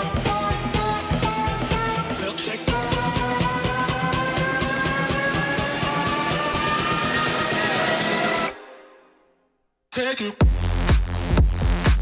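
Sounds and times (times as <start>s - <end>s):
electronic dance music: 0.0s - 9.1s, 10.4s - 12.0s.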